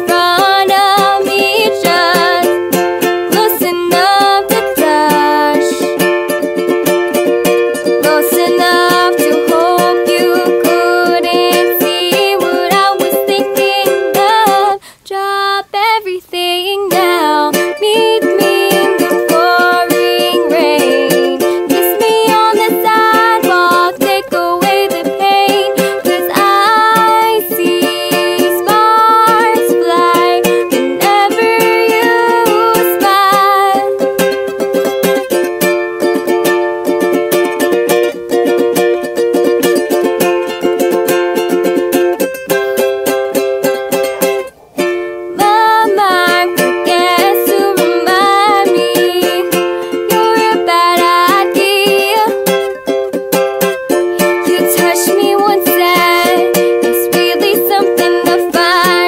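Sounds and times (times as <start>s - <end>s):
song with strummed accompaniment: 0.0s - 59.0s.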